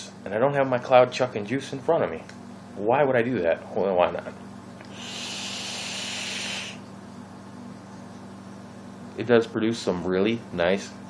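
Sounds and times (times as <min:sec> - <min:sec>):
coil sizzling: 0:04.7 - 0:08.2
air drawn through vaporizer: 0:04.8 - 0:06.9
breathy exhale: 0:04.9 - 0:06.8.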